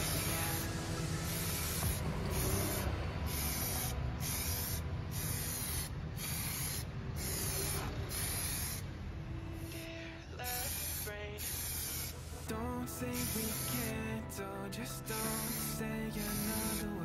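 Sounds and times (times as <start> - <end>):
aerosol spray can hissing: 0.0 - 8.9, 10.4 - 14.0, 15.0 - 17.0
music: 0.0 - 17.0.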